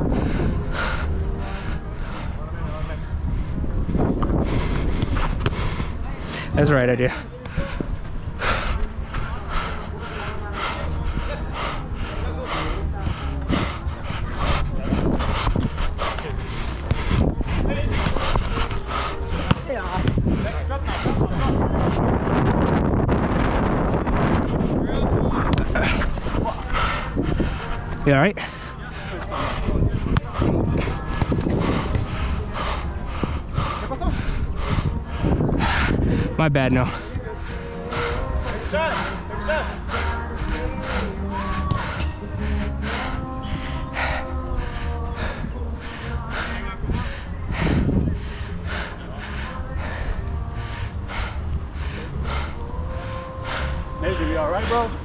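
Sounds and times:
running footsteps: 0:00.0 - 0:22.3, 0:23.2 - 0:54.0
wind rumbling on microphone: 0:00.0 - 0:55.0.

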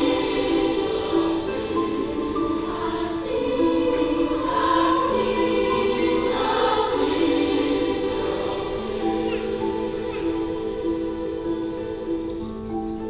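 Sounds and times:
choir singing sustained notes: 0:00.0 - 0:13.0.

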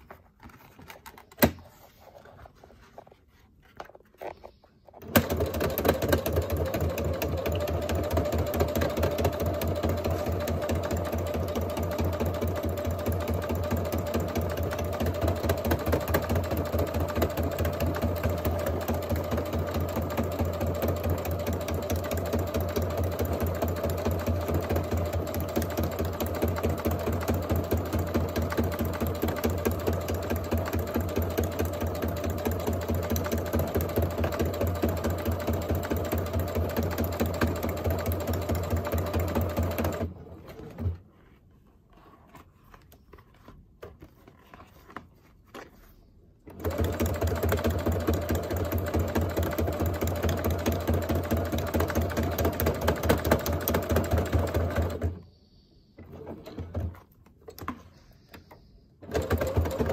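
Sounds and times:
sewing machine stitching: 0:05.0 - 0:41.0, 0:46.4 - 0:55.2, 0:56.0 - 0:57.8, 0:59.0 - 0:59.9.

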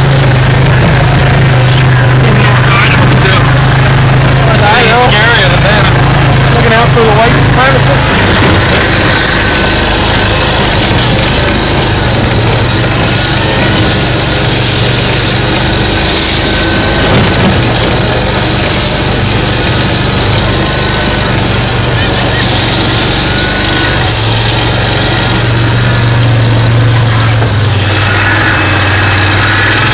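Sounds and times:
rushing noise over snow: 0:00.0 - 0:29.9
vehicle engine running: 0:00.0 - 0:29.9.

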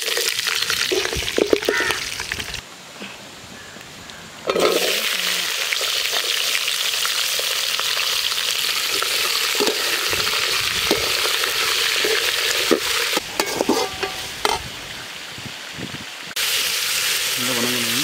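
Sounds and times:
metal skimmer scraping pan: 0:04.4 - 0:05.1, 0:08.8 - 0:14.7
vegetables sizzling in a pan: 0:04.5 - 0:15.0, 0:16.3 - 0:18.0.

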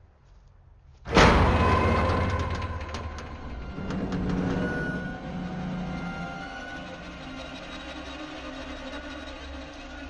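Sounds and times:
metal clicks and creaks: 0:01.1 - 0:10.0.

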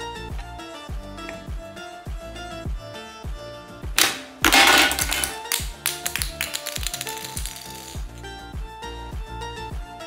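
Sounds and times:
plastic figure clattering on tiles: 0:04.0 - 0:08.0.

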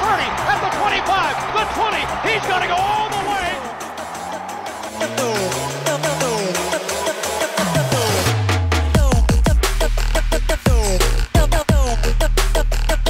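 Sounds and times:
crowd shouting and cheering: 0:00.0 - 0:09.8
electronic music: 0:00.0 - 0:13.0.

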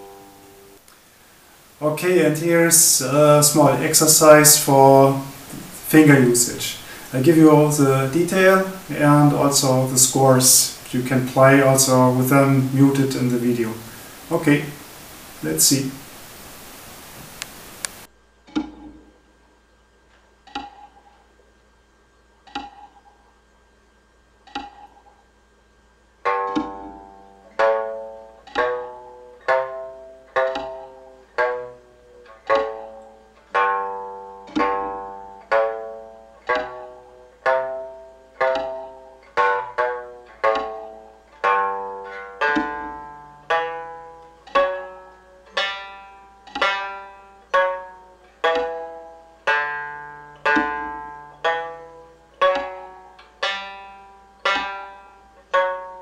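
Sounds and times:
plucked lute notes: 0:00.0 - 0:19.4, 0:20.4 - 0:21.1, 0:22.4 - 0:23.1, 0:24.4 - 0:25.1, 0:26.2 - 0:56.0.

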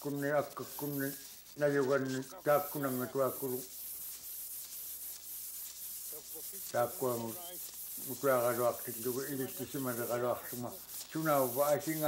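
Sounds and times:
knife scraping packed snow: 0:00.0 - 0:12.0
man speaking: 0:00.1 - 0:03.7, 0:06.2 - 0:12.0.

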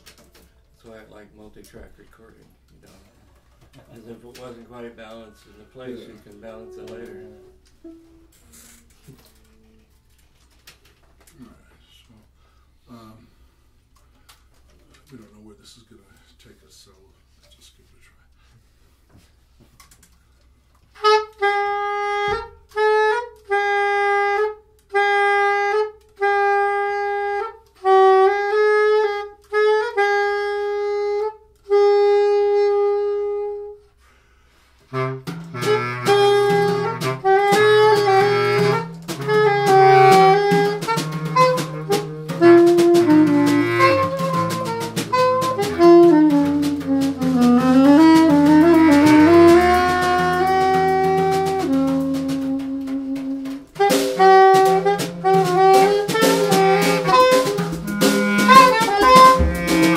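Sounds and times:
jazz group playing: 0:01.7 - 0:11.3, 0:20.9 - 0:33.8, 0:34.8 - 0:59.9
woodwind playing short notes: 0:04.9 - 0:10.0, 0:21.0 - 0:33.9, 0:34.9 - 0:59.9.

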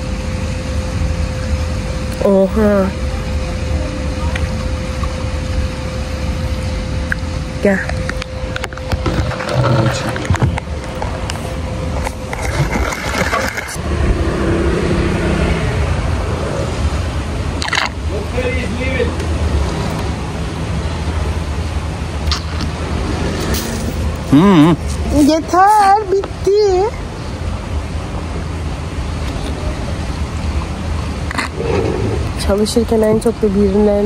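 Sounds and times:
traffic rumble: 0:00.0 - 0:34.0
faint voices: 0:02.2 - 0:06.8.

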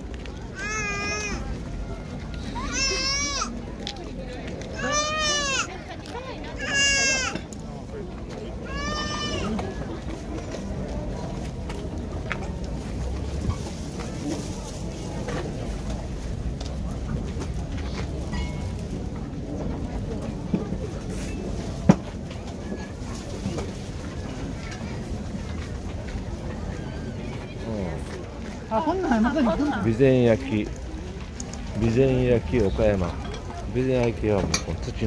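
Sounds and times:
busy outdoor market: 0:00.0 - 0:35.0
crowd murmur: 0:00.0 - 0:35.0.

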